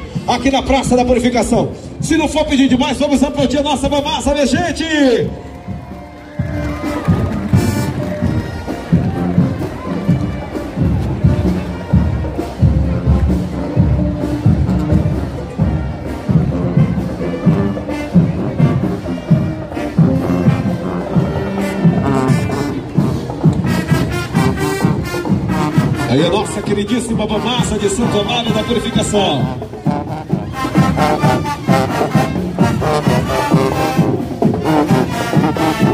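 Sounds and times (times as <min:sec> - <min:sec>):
marching band playing: 0:00.0 - 0:35.9
drums beating: 0:03.4 - 0:35.9
crowd cheering: 0:05.0 - 0:12.5.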